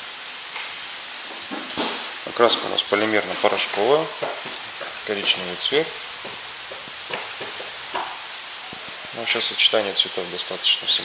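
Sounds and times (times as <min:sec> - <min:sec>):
rain hissing on plastic roof: 0:00.0 - 0:11.0.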